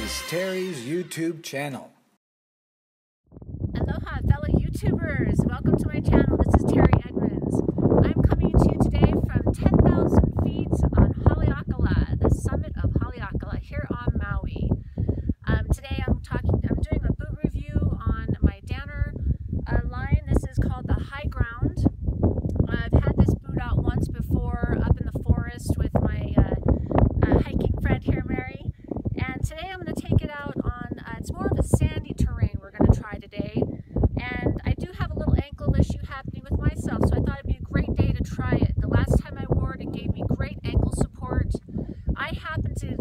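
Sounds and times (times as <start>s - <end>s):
wind noise on microphone: 3.3s - 43.0s
woman speaking: 3.8s - 14.7s, 15.4s - 21.9s, 22.6s - 26.6s, 27.2s - 33.6s, 34.2s - 43.0s
woman talking: 3.8s - 14.7s, 15.4s - 21.9s, 22.5s - 26.6s, 27.2s - 43.0s.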